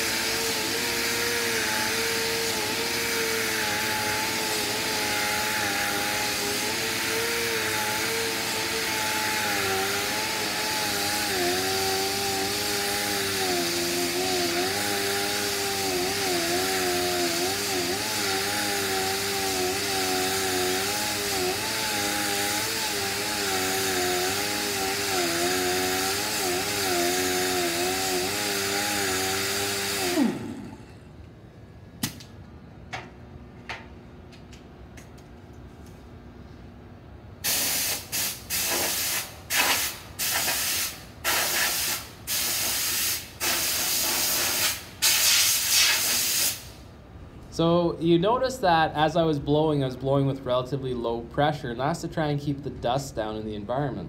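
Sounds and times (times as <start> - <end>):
hiss of air: 0.0 - 30.0, 37.4 - 46.8
pneumatic grinder whine: 0.0 - 31.2.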